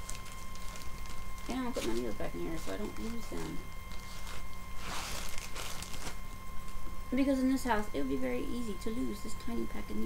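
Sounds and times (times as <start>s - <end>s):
packaging rustling: 0.0s - 6.8s.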